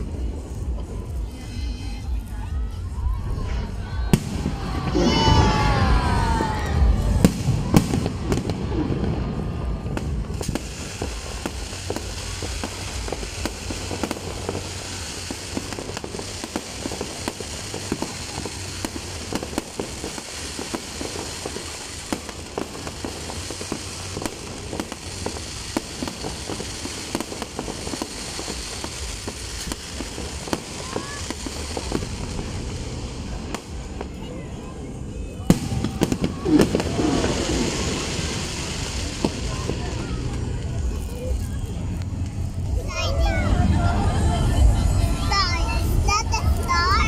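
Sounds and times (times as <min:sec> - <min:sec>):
fireworks bangs: 0:00.0 - 0:47.0
crackle of fireworks pops: 0:04.1 - 0:34.4, 0:35.2 - 0:42.8.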